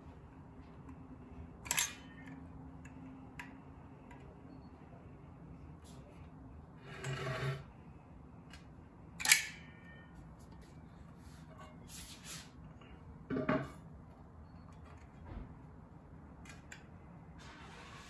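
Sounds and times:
caulking gun metallic click: 9.2s - 9.6s.

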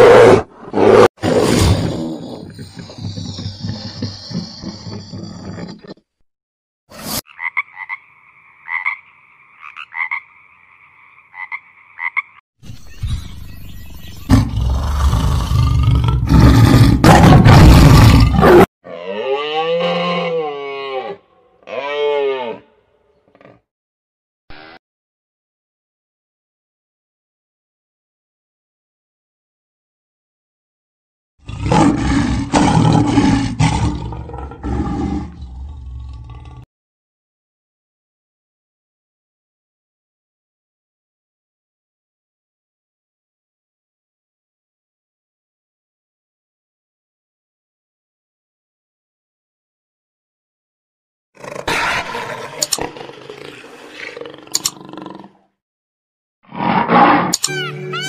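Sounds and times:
tiger roaring: 0.0s - 6.0s, 14.3s - 22.6s, 31.4s - 36.6s, 51.4s - 55.5s, 56.5s - 57.4s
cow mooing: 18.8s - 22.7s
high two-toned animal call: 56.6s - 58.0s.

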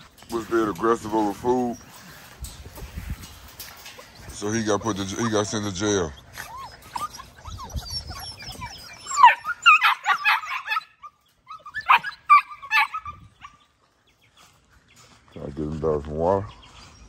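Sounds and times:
dog whining and crying: 3.8s - 13.7s.

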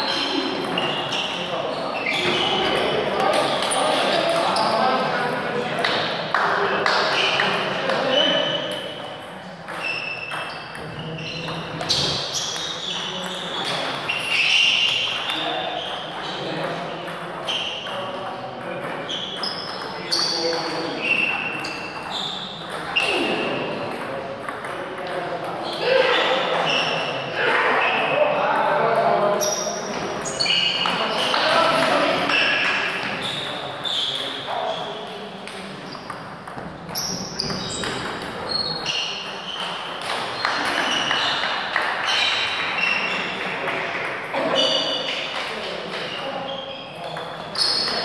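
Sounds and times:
voices of players: 0.0s - 48.0s.

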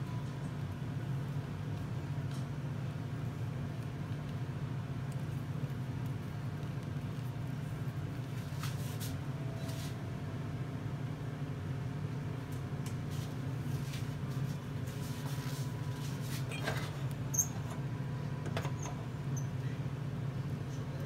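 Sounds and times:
low steady hum: 0.0s - 21.0s
small high squeaks: 16.5s - 17.7s.

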